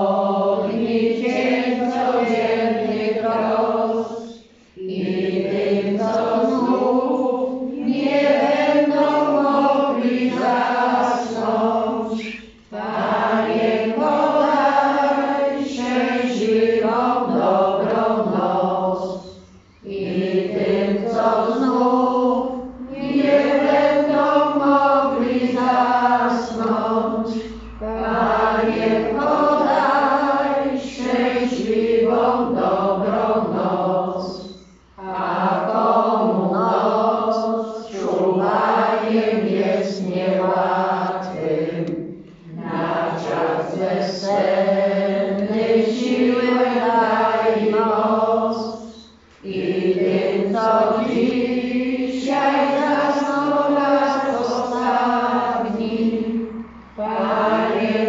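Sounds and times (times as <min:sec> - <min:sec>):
congregation singing: 0:00.0 - 0:58.0.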